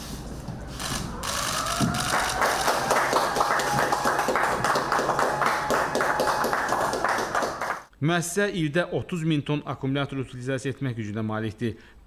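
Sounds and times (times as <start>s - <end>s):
people clapping: 0.8s - 7.9s.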